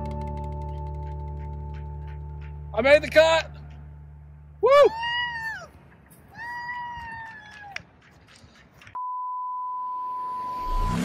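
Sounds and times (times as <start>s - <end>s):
child squealing: 4.6s - 5.7s, 6.3s - 7.8s
steady electronic beep: 9.0s - 11.0s
rising whoosh: 10.2s - 11.0s.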